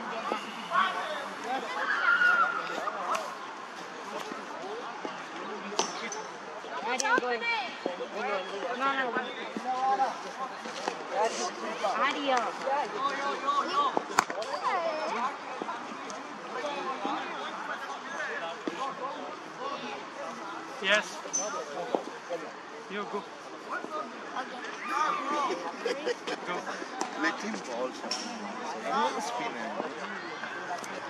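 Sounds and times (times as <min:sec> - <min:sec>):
voices talking: 0:00.0 - 0:31.0.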